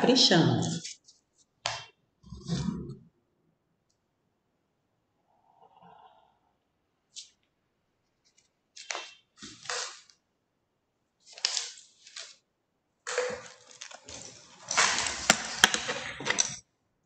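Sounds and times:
rustling and scraping noises: 0:00.6 - 0:01.5, 0:13.1 - 0:16.6.

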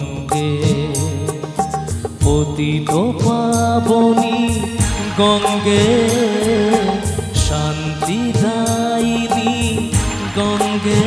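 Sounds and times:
devotional song lead melody: 0:00.0 - 0:11.0
steady percussion strokes: 0:00.0 - 0:11.0.

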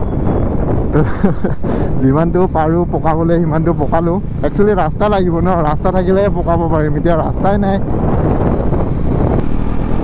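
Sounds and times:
wind buffeting microphone: 0:00.0 - 0:10.0
motorcycle engine: 0:02.3 - 0:10.0.

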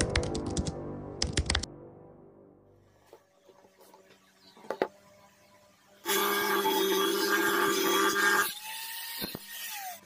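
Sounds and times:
keyboard typing clicks: 0:00.0 - 0:01.7
ambient intro music: 0:00.0 - 0:03.0.

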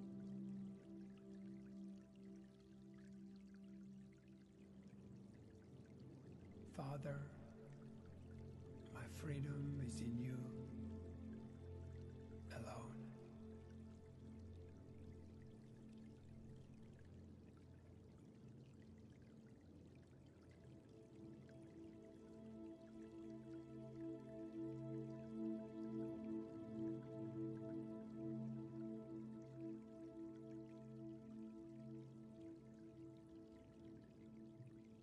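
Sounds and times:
ambient meditation music: 0:00.0 - 0:35.0
water dripping: 0:00.0 - 0:35.0.

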